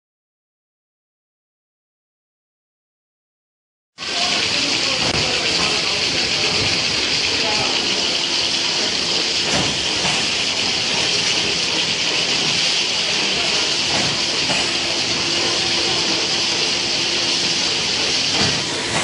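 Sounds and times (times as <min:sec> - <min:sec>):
cartoning machine running: 0:04.0 - 0:19.0.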